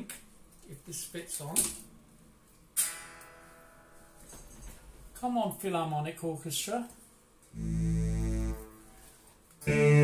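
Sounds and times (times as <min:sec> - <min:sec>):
electric guitar chord ringing: 0:09.6 - 0:10.0.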